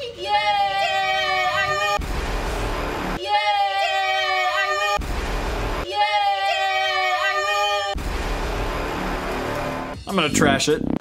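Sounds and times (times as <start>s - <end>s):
steady rushing noise: 1.9s - 3.2s, 5.0s - 5.8s
low rumble: 2.0s - 3.2s, 5.0s - 5.8s.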